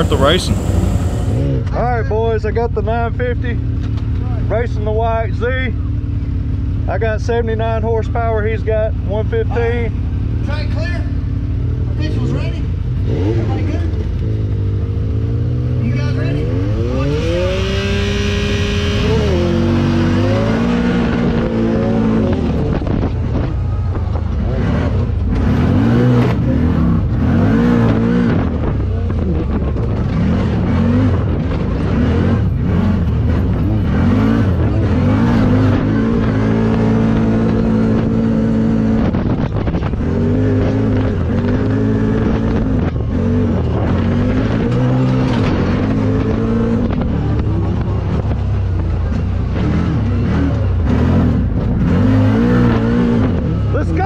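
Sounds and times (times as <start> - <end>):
engine revving: 0.0 - 2.1, 12.0 - 54.0.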